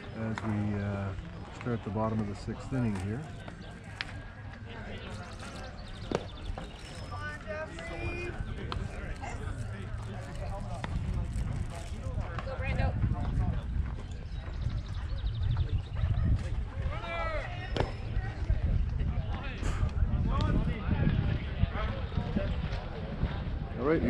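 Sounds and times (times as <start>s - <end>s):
distant voices: 0.0s - 24.0s
wind rumble on microphone: 5.0s - 24.0s.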